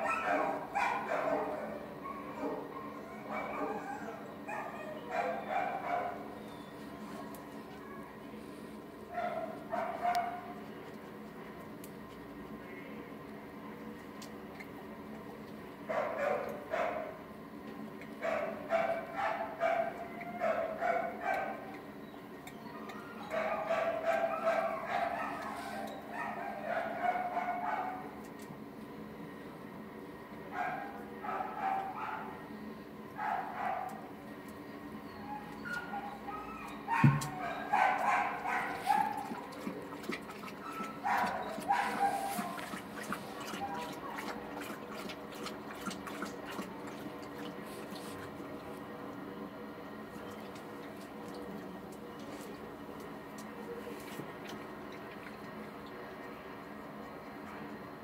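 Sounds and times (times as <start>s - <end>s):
dogs barking: 0.0s - 6.8s, 9.1s - 10.6s, 15.8s - 17.2s, 18.2s - 28.3s, 30.5s - 32.5s, 33.1s - 48.5s.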